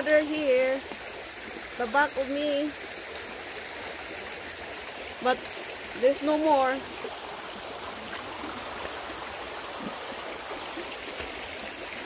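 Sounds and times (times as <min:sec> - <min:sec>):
river flowing over rocks: 0:00.0 - 0:12.0.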